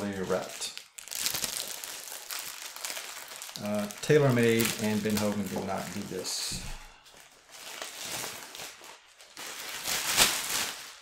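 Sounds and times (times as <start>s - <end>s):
plastic wrap crinkling: 0.0s - 11.0s.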